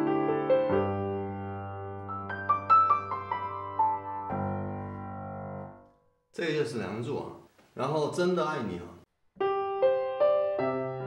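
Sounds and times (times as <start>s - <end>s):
piano chord ringing: 0.0s - 6.1s, 9.4s - 11.0s.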